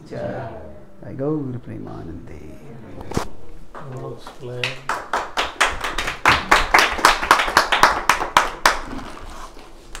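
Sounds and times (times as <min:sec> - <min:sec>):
audience clapping: 0:03.7 - 0:09.2.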